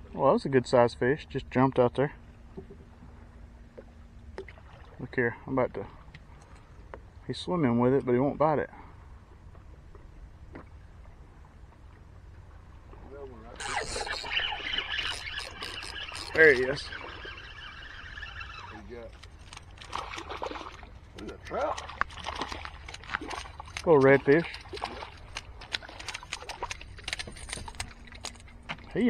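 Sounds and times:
fishing reel cranking: 0:13.6 - 0:19.9
reel ticking: 0:13.6 - 0:19.9
fish splashing at water surface: 0:19.6 - 0:28.3.

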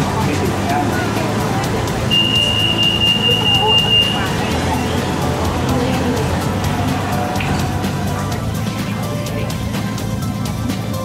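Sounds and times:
metro train wheels and motors: 0:00.0 - 0:11.0
thin high steady tone: 0:00.8 - 0:08.1.

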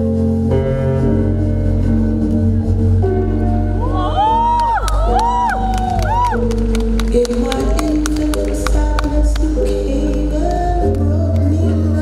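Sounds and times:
audience cheering: 0:03.9 - 0:07.9
sharp claps: 0:04.6 - 0:11.5
rumba song over sound system: 0:06.5 - 0:12.0.

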